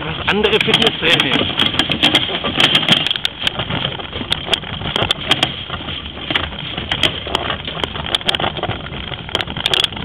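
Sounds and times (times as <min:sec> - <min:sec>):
cart wheels rolling over asphalt: 0:00.0 - 0:10.0.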